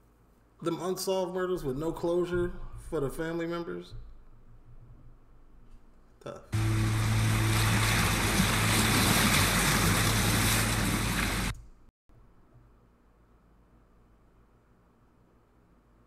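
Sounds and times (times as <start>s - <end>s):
low steady hum: 3.9s - 16.0s
surf: 6.6s - 11.5s.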